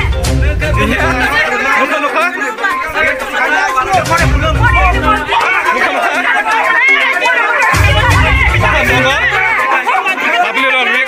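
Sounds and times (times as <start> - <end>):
overlapping voices talking: 0.0 - 11.0.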